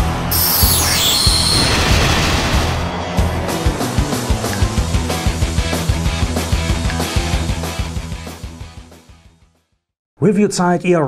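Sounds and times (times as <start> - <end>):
glittering downward sweep effect: 0.3 - 2.9.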